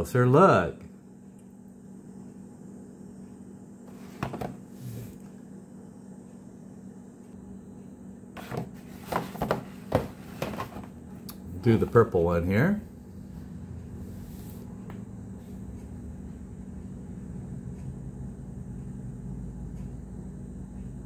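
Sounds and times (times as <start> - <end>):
low room hum: 0.0 - 21.0
packages knocking and rustling: 3.9 - 4.6, 8.4 - 11.0.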